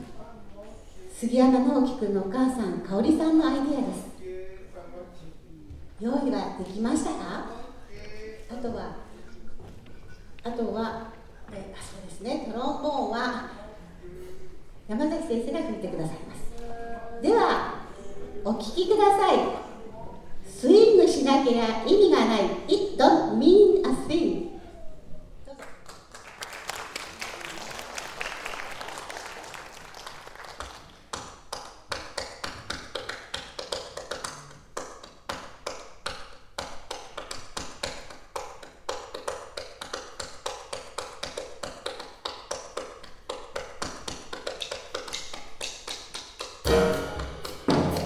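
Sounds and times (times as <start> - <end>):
hand clapping rhythm: 25.6 - 48.0
band instruments playing: 46.7 - 48.0.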